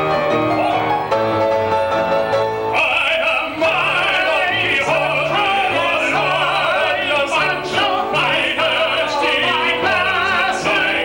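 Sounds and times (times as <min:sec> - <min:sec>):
instrumental accompaniment: 0:00.0 - 0:11.0
men singing operatic duet: 0:02.7 - 0:11.0.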